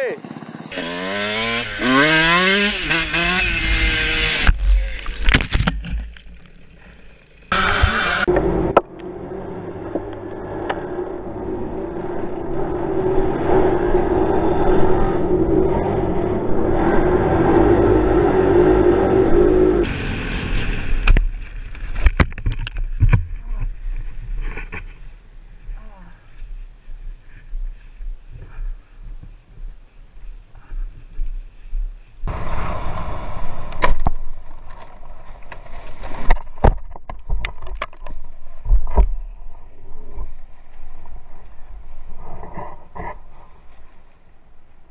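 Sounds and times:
dirt bike engines running: 0.0s - 32.5s.

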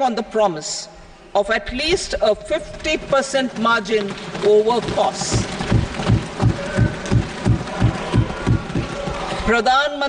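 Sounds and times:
people thumping desks: 2.7s - 9.5s.

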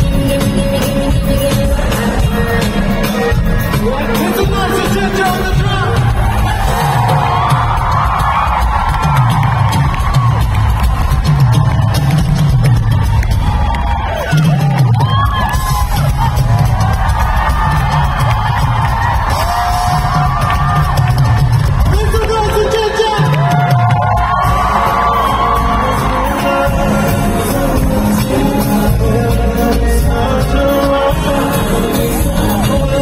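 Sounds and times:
heavy bass line: 0.0s - 33.0s
live band playing dance-pop: 0.0s - 33.0s
crowd whooping: 2.8s - 33.0s.

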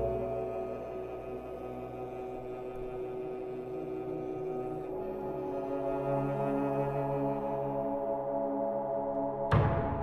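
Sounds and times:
string quartet playing soft chords: 0.0s - 8.5s.

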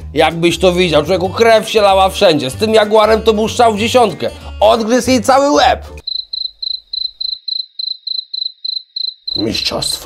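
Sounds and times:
cricket chirps: 6.0s - 10.0s.

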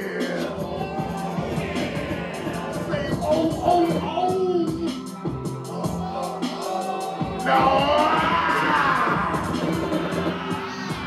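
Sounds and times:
electronic beat: 0.0s - 11.0s.

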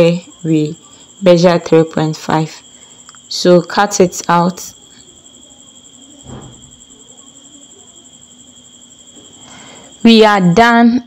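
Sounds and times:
faint high-pitched tone: 0.0s - 11.0s.

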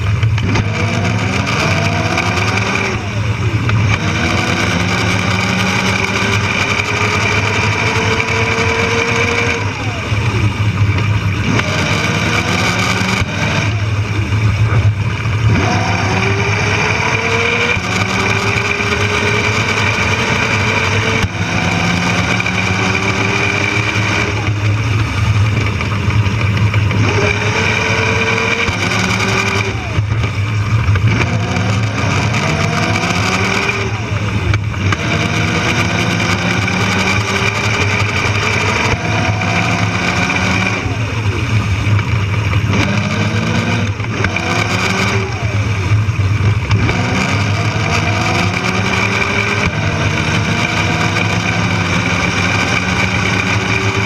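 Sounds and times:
drivetrain drone and rattle: 0.0s - 54.0s.

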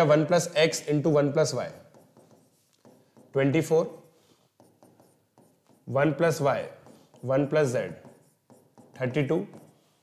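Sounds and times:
person speaking: 0.0s - 9.8s
marker writing on whiteboard: 0.0s - 10.0s.

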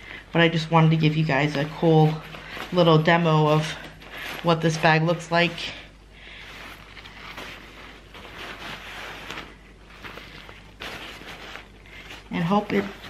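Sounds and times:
nylon backpack rustling: 0.0s - 13.0s.

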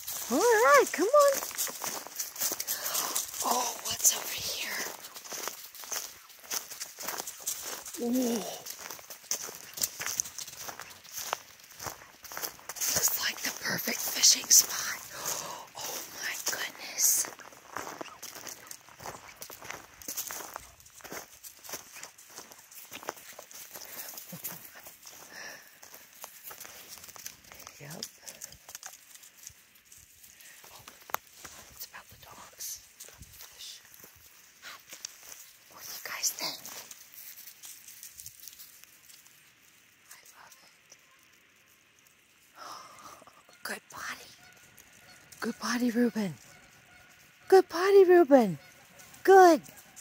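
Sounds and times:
footsteps crunching dry leaves: 0.0s - 40.7s
dog paws running through leaves: 0.0s - 42.8s, 44.0s - 47.4s, 48.0s - 50.0s.

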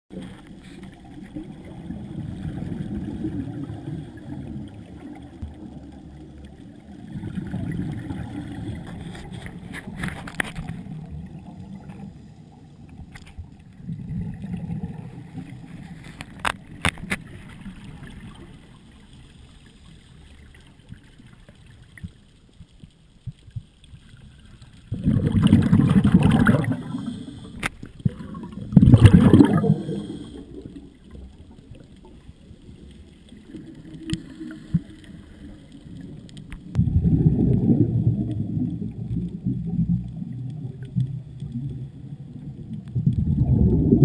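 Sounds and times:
underwater regulator bubbles: 0.1s - 12.2s, 13.7s - 18.6s, 24.8s - 44.0s.

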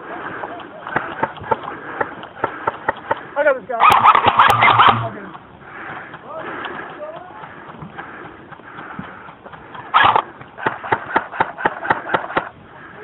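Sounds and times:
game gunshots: 3.8s - 5.1s.

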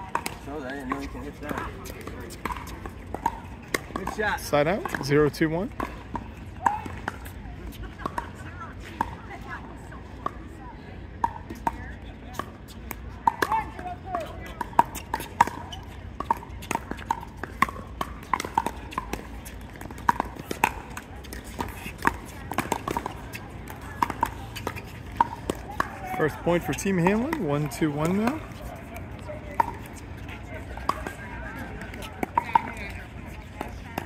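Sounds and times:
voices in background: 0.0s - 34.0s.

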